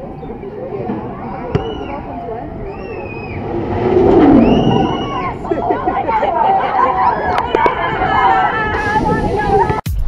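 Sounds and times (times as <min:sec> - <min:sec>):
crowd voices: 0:00.0 - 0:09.9
ride rushing sound: 0:02.5 - 0:09.6
riders screaming: 0:04.4 - 0:09.3.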